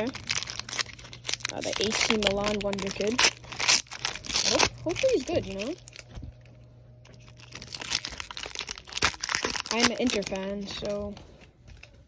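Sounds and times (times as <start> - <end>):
foil wrapper crinkling: 0.0 - 11.1
faint steady hum: 0.0 - 12.0.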